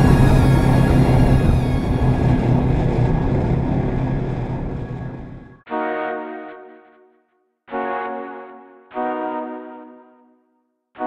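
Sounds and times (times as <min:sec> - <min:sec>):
background music: 0:05.7 - 0:11.0.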